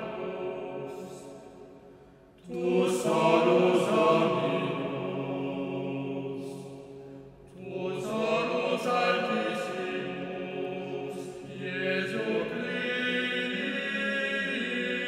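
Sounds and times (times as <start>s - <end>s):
male vocal ensemble singing: 0.0s - 1.6s, 2.4s - 6.9s, 7.5s - 15.0s.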